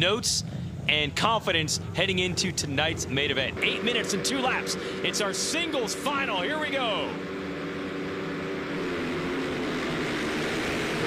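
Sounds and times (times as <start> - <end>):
racing motorcycles revving and accelerating: 1.7 - 11.0.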